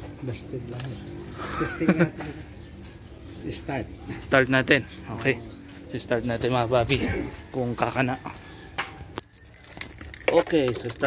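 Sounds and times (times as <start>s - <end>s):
car keys jingling: 9.2s - 11.0s.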